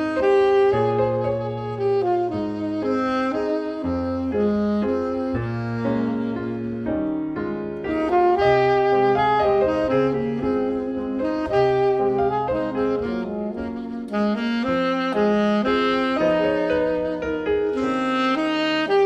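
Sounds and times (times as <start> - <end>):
alto saxophone melody: 0.0 - 19.0
piano accompaniment: 0.0 - 19.0.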